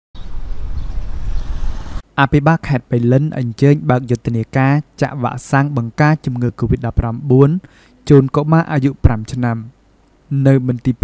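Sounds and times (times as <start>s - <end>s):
faint hiss: 1.1s - 11.0s.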